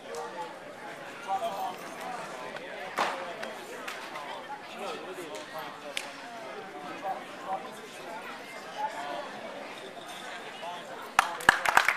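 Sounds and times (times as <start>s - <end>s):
chatter of many voices: 0.0s - 11.9s.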